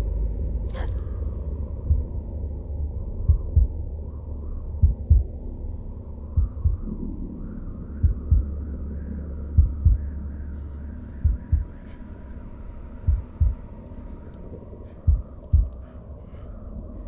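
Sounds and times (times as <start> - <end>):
steady low drone: 0.0 - 17.0
heartbeat double thumps: 1.8 - 2.2, 3.2 - 3.8, 4.8 - 5.4, 6.3 - 7.0, 8.0 - 8.7, 9.5 - 10.1, 11.2 - 11.9, 13.0 - 13.7, 15.0 - 15.9.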